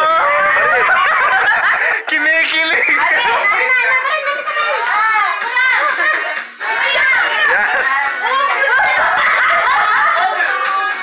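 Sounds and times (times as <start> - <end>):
women laughing: 0.0 - 2.1, 5.6 - 10.5
dance music: 0.0 - 11.0.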